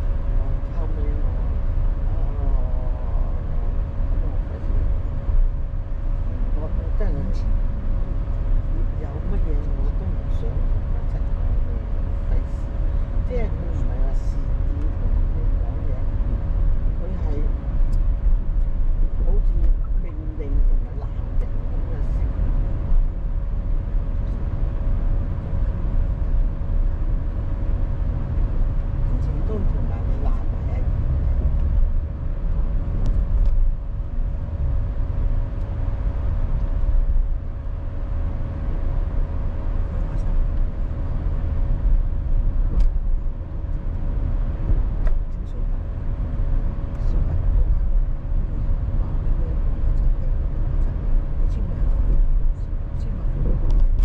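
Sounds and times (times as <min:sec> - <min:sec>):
car driving low rumble: 0:00.0 - 0:54.0.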